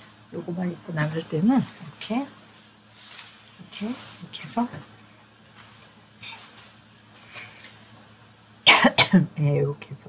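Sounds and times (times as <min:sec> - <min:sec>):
soft rustles: 0:01.6 - 0:07.8
woman's cough-like outburst: 0:08.7 - 0:09.3.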